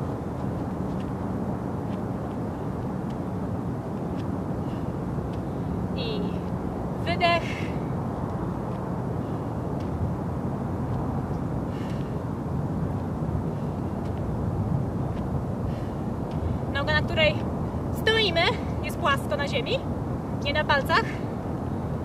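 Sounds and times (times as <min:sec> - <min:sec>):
outdoor rumble and hiss: 0:00.0 - 0:22.0
woman's voice: 0:06.0 - 0:07.7, 0:16.8 - 0:17.4, 0:18.0 - 0:19.8, 0:20.4 - 0:21.2.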